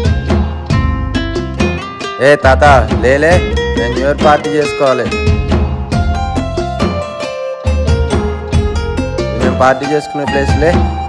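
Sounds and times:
plucked guitar notes: 0.0s - 11.0s
low bass: 2.6s - 4.4s, 5.1s - 9.6s.

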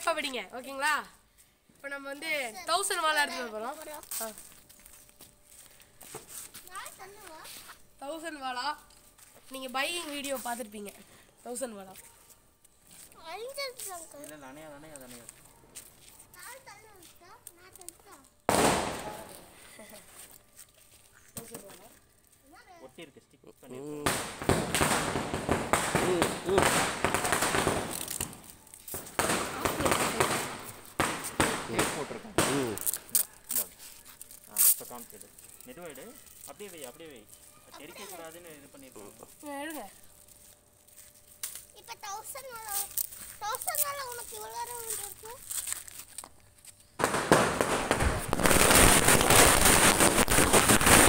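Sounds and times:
firecrackers crackling: 1.9s - 5.2s, 13.1s - 20.4s, 23.8s - 46.3s, 47.0s - 51.0s
firecrackers banging rapidly: 18.5s - 19.4s, 24.0s - 33.1s, 47.0s - 51.0s.

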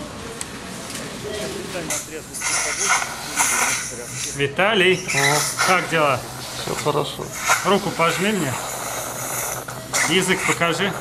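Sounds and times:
faint muffled voices: 0.0s - 11.0s
high hissing noise: 1.6s - 11.0s.

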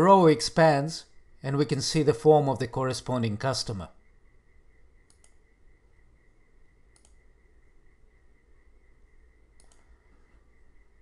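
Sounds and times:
faint steady whine: 0.0s - 11.0s
low hum: 0.0s - 11.0s
computer mouse clicks: 5.0s - 5.4s, 6.9s - 7.3s, 9.6s - 10.0s.

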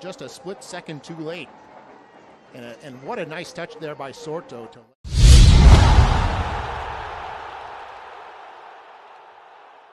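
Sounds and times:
reverberant whoosh sound effect: 5.1s - 7.4s.

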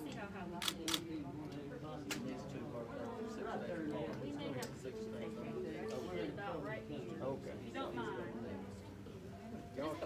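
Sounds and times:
low background talk: 0.0s - 10.0s.

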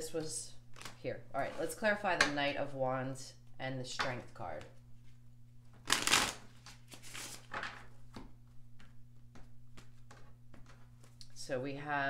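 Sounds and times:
faint steady hum: 0.0s - 12.0s
cards shuffling swish: 5.8s - 7.5s.

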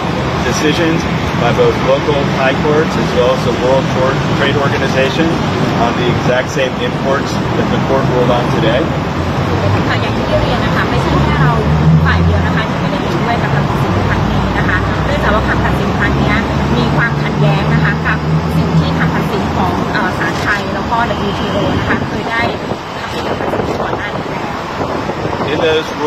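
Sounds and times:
vehicle engine rumble: 0.0s - 26.0s
people talking: 0.4s - 24.6s, 25.5s - 26.0s.

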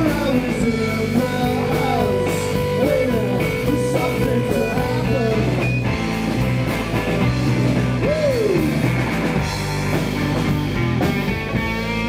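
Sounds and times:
electric guitars bending notes: 0.0s - 12.0s
steady bass: 0.0s - 12.0s.

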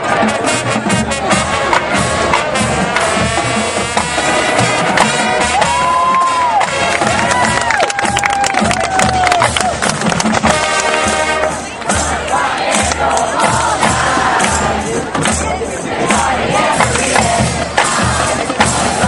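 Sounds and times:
bass drum beat: 0.0s - 19.0s
crowd cheering: 0.0s - 19.0s
marching band playing: 0.0s - 19.0s.

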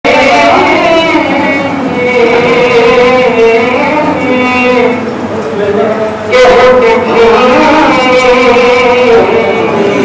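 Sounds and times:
men chanting through a microphone: 0.1s - 10.0s.

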